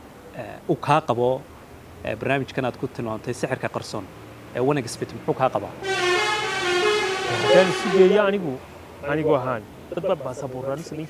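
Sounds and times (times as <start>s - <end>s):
vehicle horn blast: 5.8s - 8.4s
man speaking: 7.2s - 11.0s.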